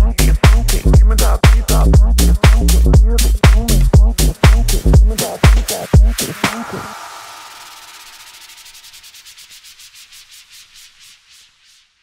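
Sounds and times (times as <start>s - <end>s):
hissing noise pulses: 4.3s - 12.0s.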